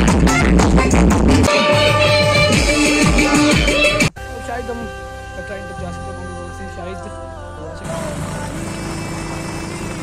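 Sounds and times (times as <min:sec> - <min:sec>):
motorcycle engine hum: 0:07.8 - 0:10.0.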